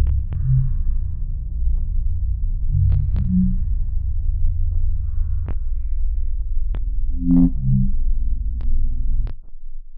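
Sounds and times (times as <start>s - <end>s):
deep bass drone: 0.0s - 9.5s.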